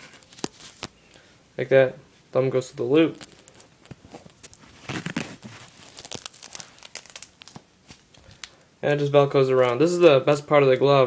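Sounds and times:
cloth wrap rustling: 0:00.0 - 0:01.0, 0:03.0 - 0:08.6
velcro strap crackling: 0:03.1 - 0:08.7.

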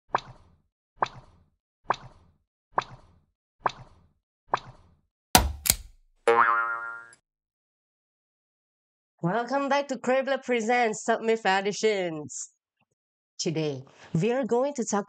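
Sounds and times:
cartoon boing hops: 0:06.3 - 0:07.2.

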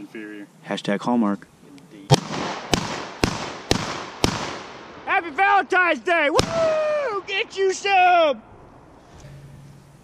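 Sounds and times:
shotgun shots with echo: 0:02.1 - 0:05.0.

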